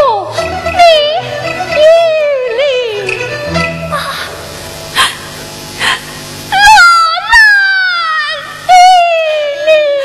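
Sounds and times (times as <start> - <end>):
quiet instrumental accompaniment: 0.0 - 5.8.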